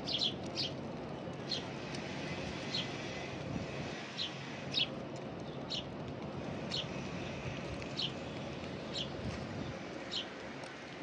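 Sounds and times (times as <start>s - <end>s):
small bird chirping: 0.0s - 0.8s.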